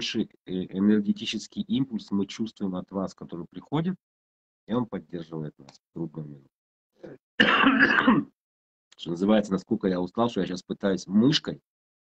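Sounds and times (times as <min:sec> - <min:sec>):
man clearing his throat: 0:07.0 - 0:08.4.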